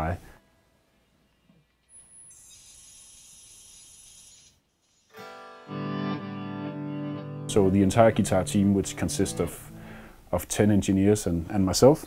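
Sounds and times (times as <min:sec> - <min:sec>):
hissing data signal: 0:01.9 - 0:05.2.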